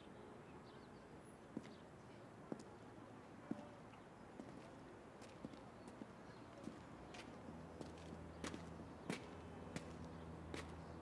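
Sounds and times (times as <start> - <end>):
footsteps on stone paving: 1.6 - 1.8, 2.5 - 2.8, 3.5 - 3.7, 4.4 - 10.9.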